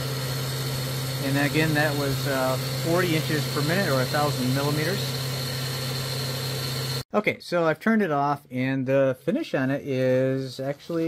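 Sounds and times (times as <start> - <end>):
high-pitched spindle whine: 0.0 - 7.0
milling spindle humming: 0.0 - 7.0.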